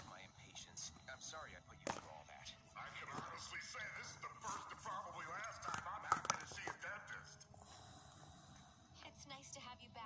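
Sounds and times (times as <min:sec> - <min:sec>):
plastic toy handling: 0:04.5 - 0:06.8.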